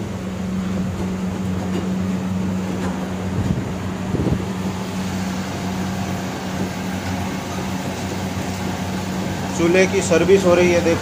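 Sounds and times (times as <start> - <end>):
gas burners roaring: 0.0 - 11.0
steady low hum: 0.0 - 11.0.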